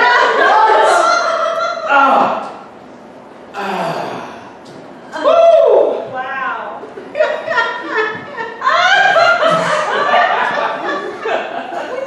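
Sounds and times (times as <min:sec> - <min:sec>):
person gasping: 0:03.6 - 0:04.6.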